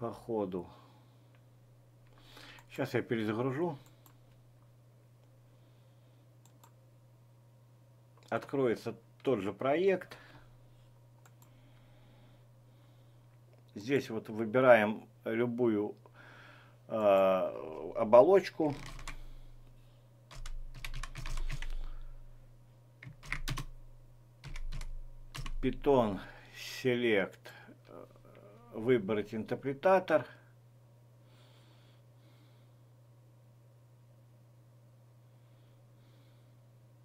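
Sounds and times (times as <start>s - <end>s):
low steady hum: 0.0s - 37.0s
computer mouse clicks: 6.4s - 6.8s, 11.2s - 11.5s
keyboard typing: 18.7s - 19.3s, 20.3s - 22.0s, 23.0s - 23.8s, 24.4s - 25.8s.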